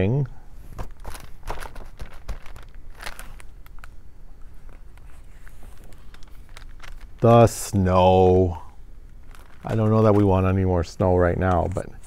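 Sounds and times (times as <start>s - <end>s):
paper handling: 0.8s - 7.8s, 9.1s - 10.6s.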